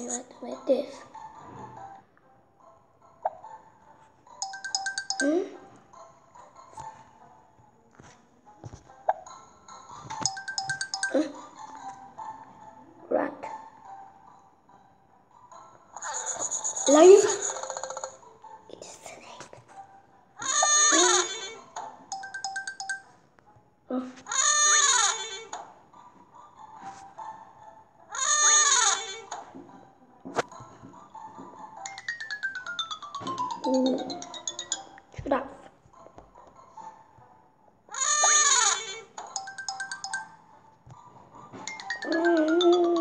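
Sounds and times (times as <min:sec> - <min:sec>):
cheerful background music: 0:00.0 - 0:24.6, 0:25.6 - 0:43.0
cartoon call with gliding tones: 0:41.8 - 0:43.0.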